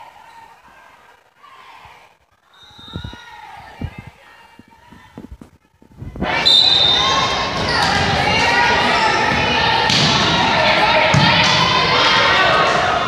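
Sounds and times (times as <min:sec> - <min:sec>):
people yelling in a gymnasium: 0:00.0 - 0:05.1, 0:06.2 - 0:13.0.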